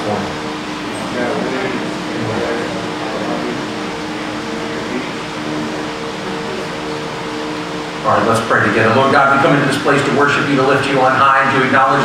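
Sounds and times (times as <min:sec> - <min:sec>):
congregation praying aloud: 0:00.0 - 0:12.0
low held tone: 0:00.0 - 0:12.0.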